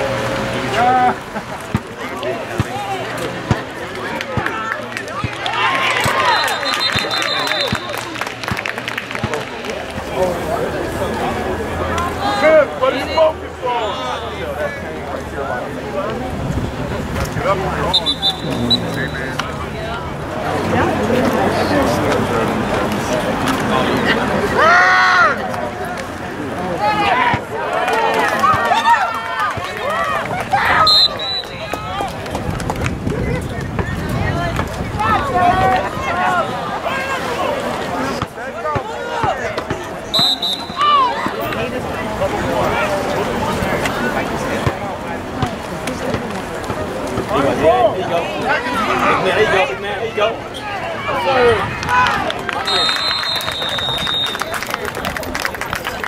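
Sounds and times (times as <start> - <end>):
people shouting and cheering: 0.0 - 16.2, 17.4 - 22.4, 23.0 - 46.4, 47.0 - 56.0
referee's whistle: 6.1 - 8.1, 17.9 - 19.3, 30.8 - 31.6, 40.1 - 41.1, 52.6 - 54.6
people shouting: 40.2 - 41.4.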